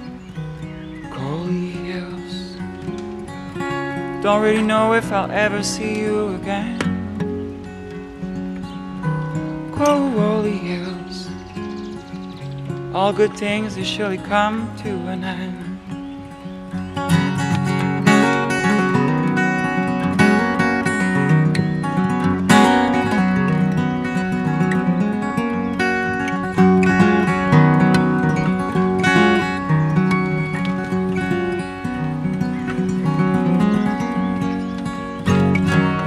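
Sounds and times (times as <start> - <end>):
acoustic guitar chords: 0.0 - 36.0.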